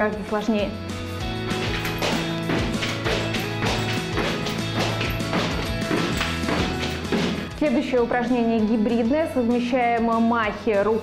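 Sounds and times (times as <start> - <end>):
background music: 0.0 - 11.0
battle ropes slapping floor: 1.3 - 7.6.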